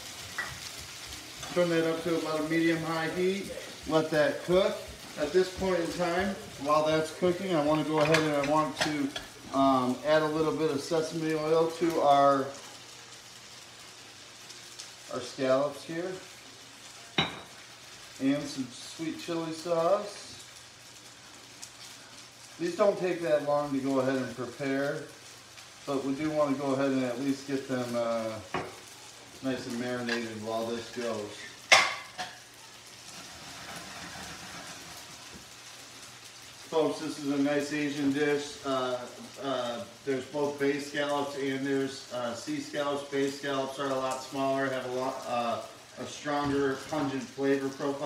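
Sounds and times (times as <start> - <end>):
noodles sizzling in a pan: 0.0 - 48.0.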